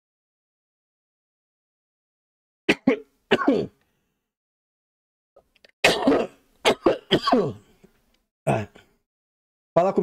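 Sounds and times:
man coughing: 0:02.7 - 0:03.8, 0:05.8 - 0:07.7
man clearing his throat: 0:05.9 - 0:07.7, 0:08.5 - 0:09.0.

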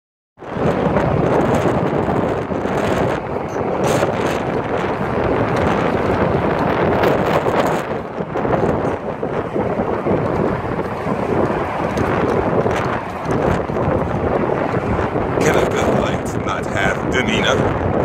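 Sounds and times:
wind buffeting microphone: 0:00.4 - 0:18.0.

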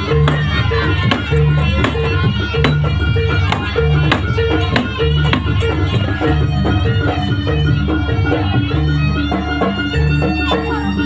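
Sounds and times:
drum strokes: 0:00.0 - 0:08.7.

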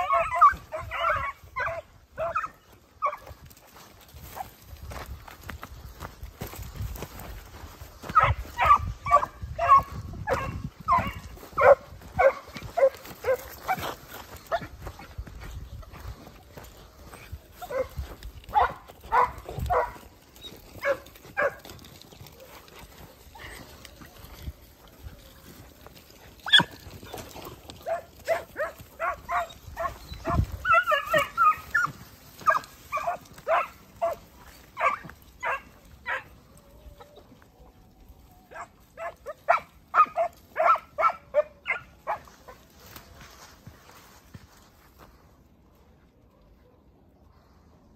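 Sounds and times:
hounds baying: 0:00.0 - 0:04.6, 0:07.3 - 0:37.4, 0:38.4 - 0:43.0.

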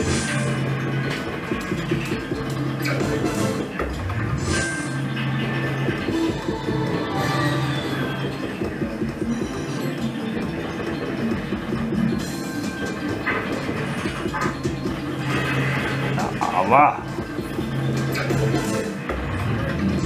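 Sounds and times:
slot machine game music: 0:00.0 - 0:20.0.

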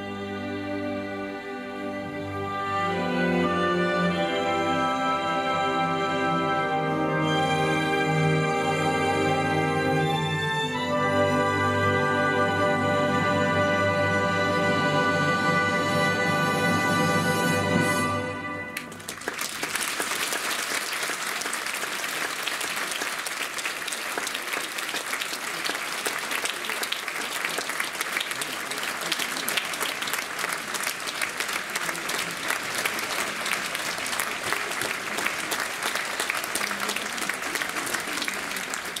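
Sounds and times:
audience applauding: 0:18.8 - 0:39.0.

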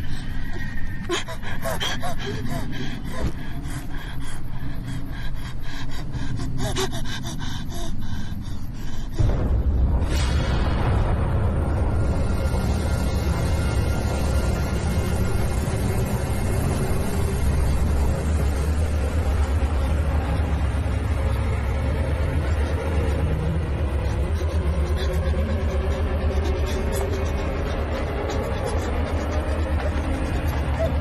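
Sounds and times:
low rumbling drone: 0:00.0 - 0:31.0.

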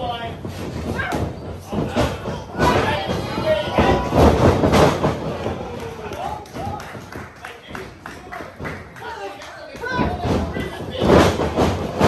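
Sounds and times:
feet pounding on ring canvas: 0:00.0 - 0:09.0.

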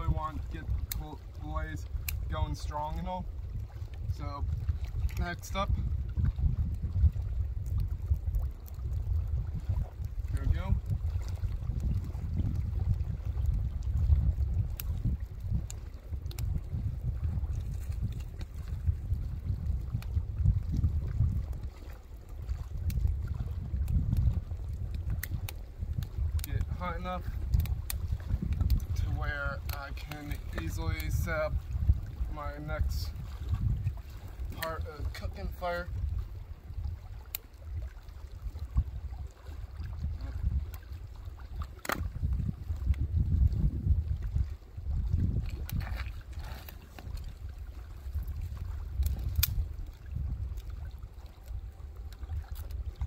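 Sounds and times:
wind buffeting microphone: 0:00.0 - 0:53.0
wood clicking on campfire: 0:00.2 - 0:43.5, 0:45.1 - 0:53.0.

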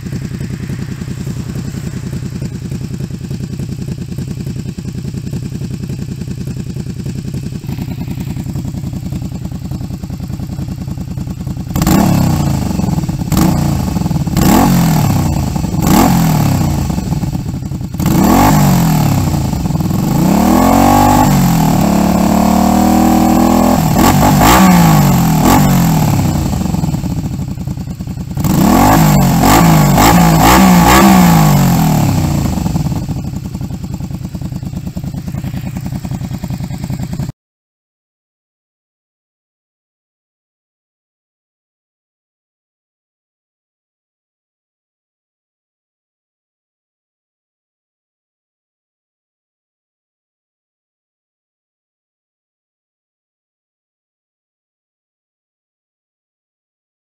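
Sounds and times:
motorcycle engine idling and revving: 0:00.0 - 0:37.4.

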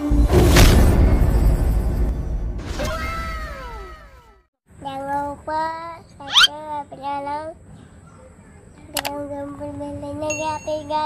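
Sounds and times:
child's sing-song voice: 0:04.7 - 0:11.0.

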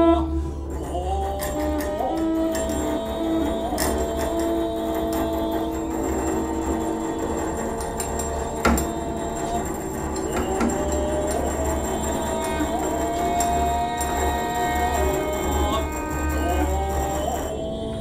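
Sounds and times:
deep steady drone: 0:00.0 - 0:18.0.

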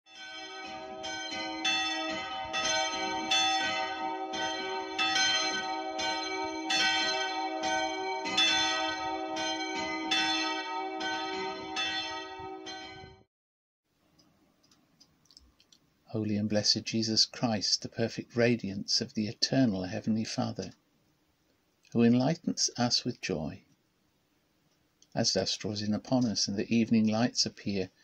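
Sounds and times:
church bells ringing: 0:00.1 - 0:13.2.

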